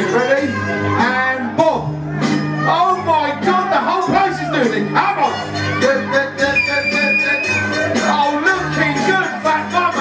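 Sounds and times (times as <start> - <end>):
dance music over sound system: 2.9 - 10.0.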